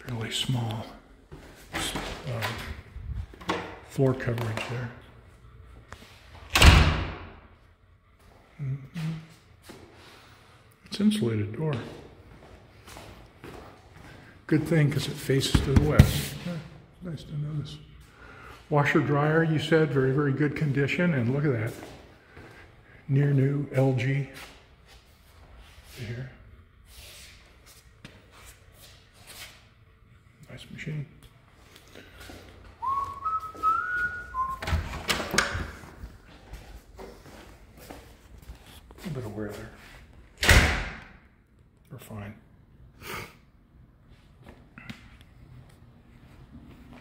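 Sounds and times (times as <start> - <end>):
door slamming shut: 6.5 - 7.4, 40.4 - 41.2.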